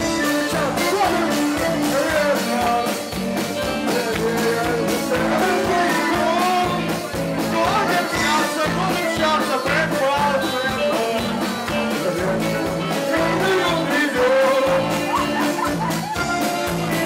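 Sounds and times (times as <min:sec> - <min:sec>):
man singing into a microphone: 0:00.0 - 0:15.7
accordion: 0:00.0 - 0:17.0
drum kit: 0:00.0 - 0:17.0
electric guitar: 0:00.0 - 0:17.0.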